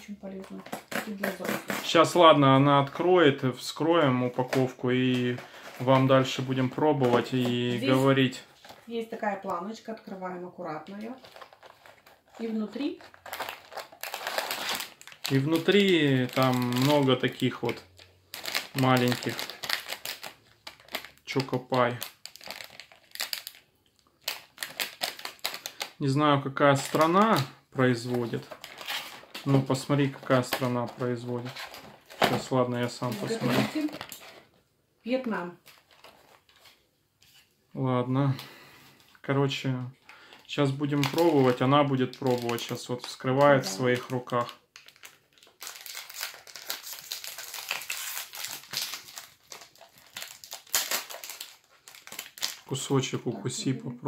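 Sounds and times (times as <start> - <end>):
plastic wrappers crinkling: 0.0 - 37.5, 38.2 - 53.3.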